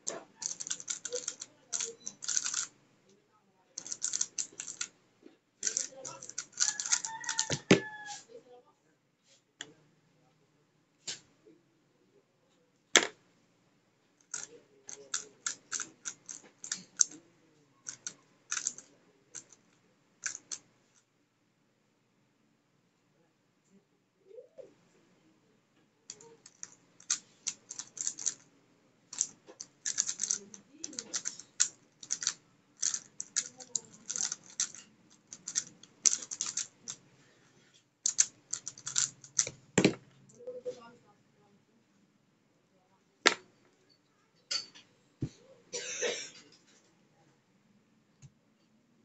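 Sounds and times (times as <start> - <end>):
puzzle cube clicking: 0.0 - 2.7, 3.8 - 4.9, 5.6 - 7.8, 14.2 - 17.2, 17.9 - 19.6, 20.2 - 20.7, 26.1 - 28.4, 29.1 - 37.0, 38.1 - 40.0
cube thump set down: 39.8 - 40.0.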